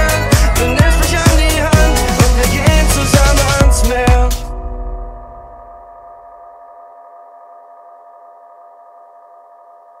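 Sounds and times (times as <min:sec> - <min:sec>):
sustained dance music chord: 0:00.0 - 0:06.7.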